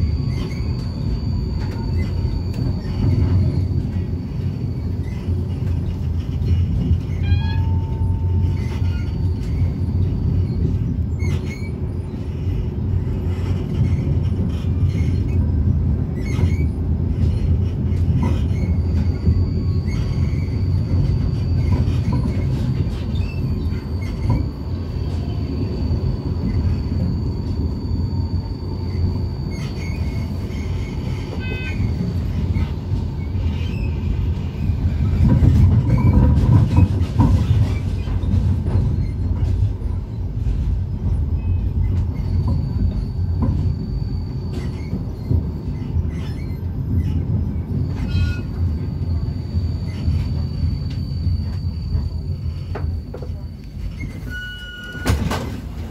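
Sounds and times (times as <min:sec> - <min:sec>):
tram wheels rumbling on rails: 0:00.0 - 0:55.9.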